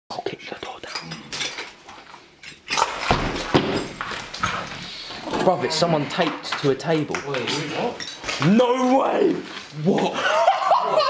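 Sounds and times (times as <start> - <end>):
people whispering: 0.1 - 1.4.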